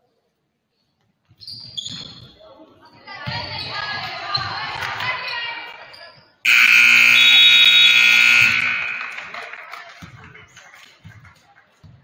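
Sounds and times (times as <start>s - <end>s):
scoreboard horn: 6.5s - 9.6s
voices: 6.5s - 10.0s
court noise: 6.5s - 10.5s.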